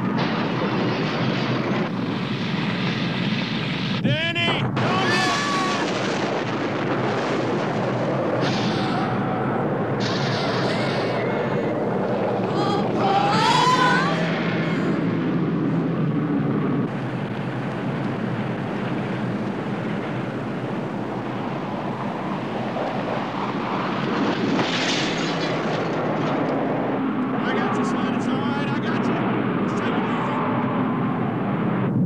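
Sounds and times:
explosion roaring rumble: 0.0s - 32.0s.

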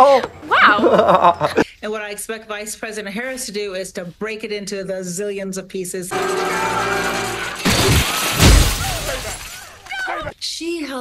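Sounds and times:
glass shattering: 6.1s - 10.3s.

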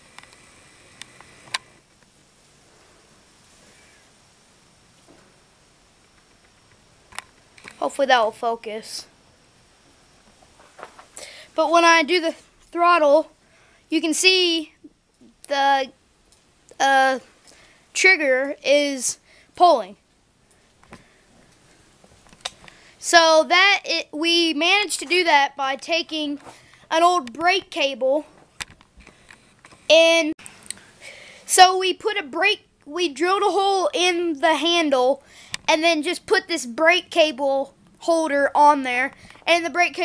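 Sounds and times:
faint hiss: 0.0s - 40.0s.

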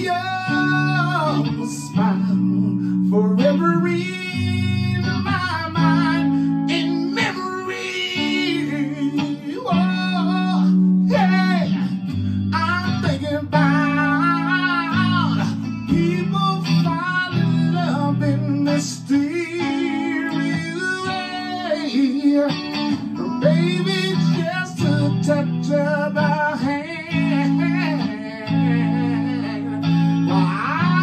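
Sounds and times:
electric guitar chords: 0.0s - 31.0s
man singing: 0.0s - 31.0s.

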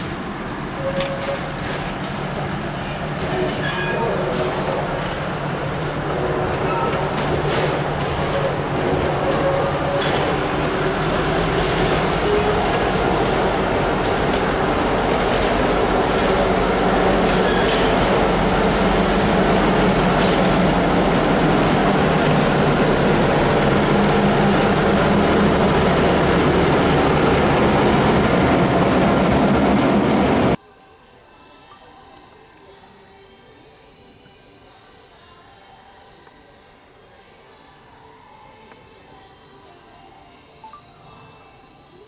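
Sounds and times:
diesel locomotive engine: 0.0s - 30.6s
train wheels rumbling on rail: 0.0s - 30.6s.

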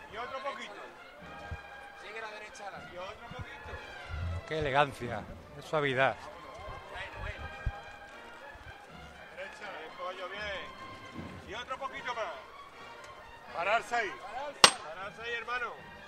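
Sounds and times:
crowd voices and calls: 2.8s - 10.0s
sharp knock: 14.6s - 14.9s.

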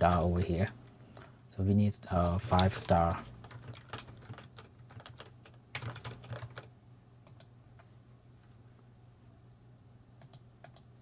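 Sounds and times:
faint low hum: 0.0s - 11.0s
computer keyboard typing: 2.2s - 7.5s, 10.2s - 10.9s.

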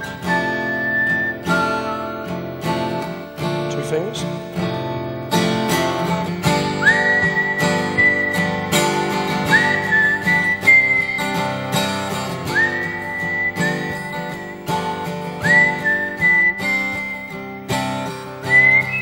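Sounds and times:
whistled melody: 0.0s - 3.1s, 6.6s - 19.0s
acoustic guitar strumming: 0.0s - 19.0s.

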